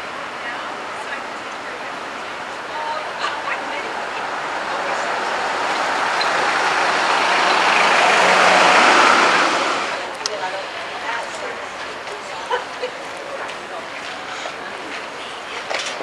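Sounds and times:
vehicle driving past: 4.0s - 10.1s.

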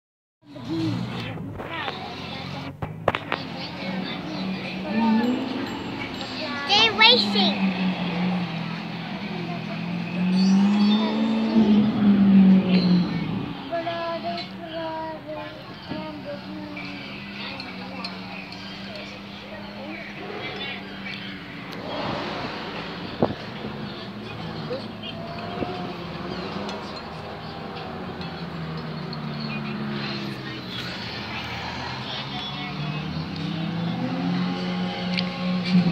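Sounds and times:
sports car engine passing: 0.5s - 35.9s
thin high tone: 4.6s - 7.8s.

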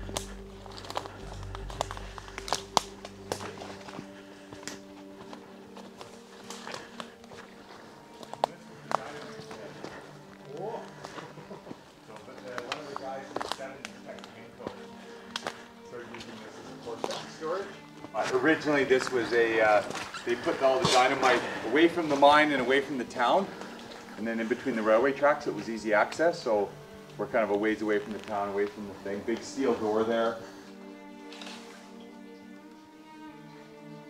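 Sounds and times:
twigs snapping: 0.0s - 16.4s, 19.8s - 20.2s, 31.2s - 31.7s
footsteps in undergrowth: 0.0s - 32.2s
music with low drone: 0.0s - 34.0s
voices: 6.9s - 30.6s.

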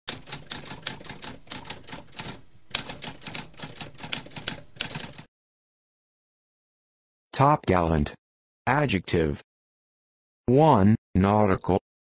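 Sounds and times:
typewriter typing: 0.1s - 5.3s.

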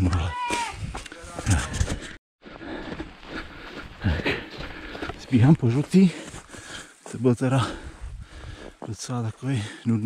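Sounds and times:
footsteps running on snow: 0.5s - 8.9s
runner breathing: 0.7s - 8.9s, 9.5s - 9.9s.

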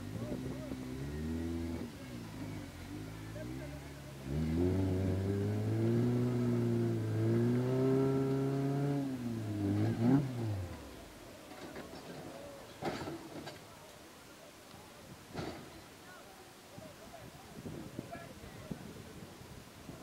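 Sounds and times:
engine revving: 0.0s - 11.2s.

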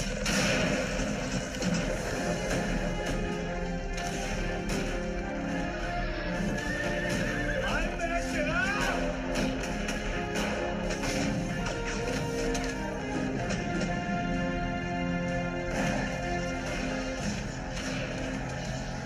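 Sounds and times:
film score music: 0.0s - 19.0s.

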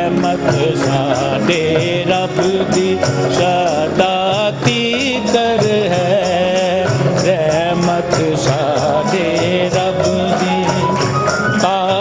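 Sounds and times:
devotional song melody: 0.0s - 12.0s
percussion beat: 0.0s - 12.0s.

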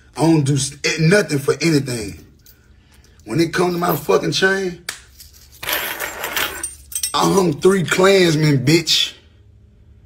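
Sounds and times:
metal chain jangling: 5.1s - 7.5s.

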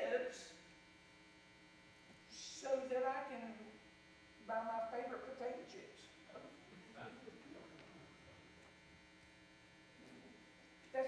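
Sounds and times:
faint mains hum: 0.0s - 11.0s
man speaking: 6.3s - 7.8s.

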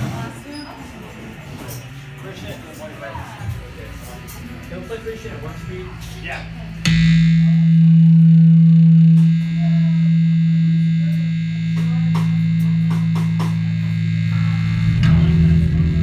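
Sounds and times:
faint crowd chatter: 0.0s - 16.0s
electric guitar chord ringing: 4.1s - 16.0s.

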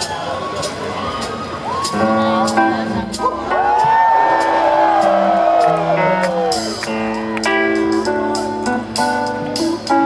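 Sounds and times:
live rock band: 0.0s - 10.0s.

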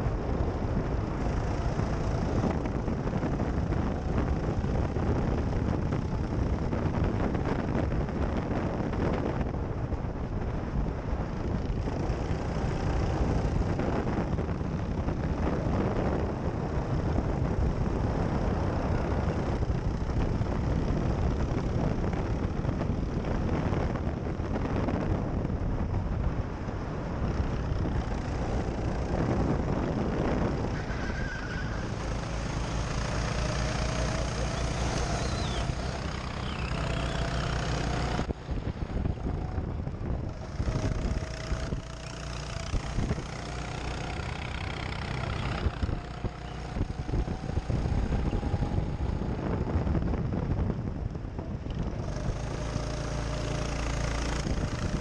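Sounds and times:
go-kart motor running: 0.0s - 55.0s
wind rushing over microphone: 0.0s - 55.0s.

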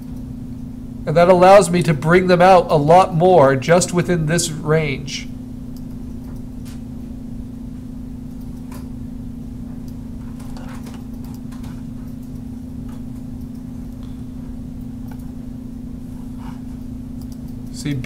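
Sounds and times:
low electrical hum: 0.0s - 18.0s
computer mouse clicks: 9.8s - 13.7s, 17.2s - 17.7s.

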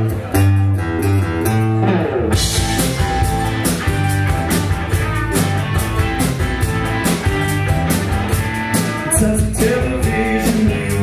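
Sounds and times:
guitars and bass playing: 0.0s - 11.0s
drum kit beat: 0.2s - 11.0s.

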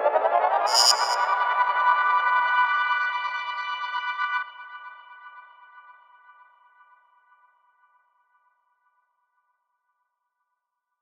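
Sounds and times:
ringing electronic chord: 0.7s - 1.3s.

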